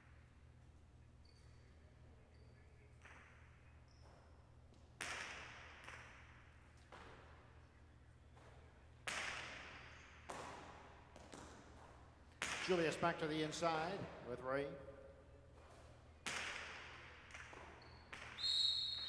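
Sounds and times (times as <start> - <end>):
ball cracking against walls: 4.7 - 7.4, 8.3 - 12.9, 15.6 - 18.4.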